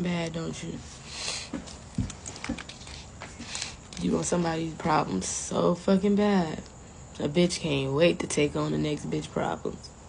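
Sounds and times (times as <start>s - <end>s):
short breath: 1.0s - 1.6s.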